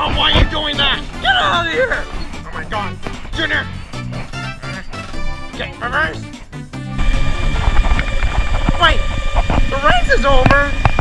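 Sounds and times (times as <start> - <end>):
go-kart engine rumble: 7.0 - 11.0.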